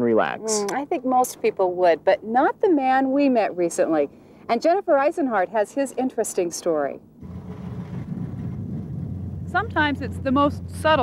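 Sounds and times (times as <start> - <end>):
truck engine rumbling: 7.2 - 11.0.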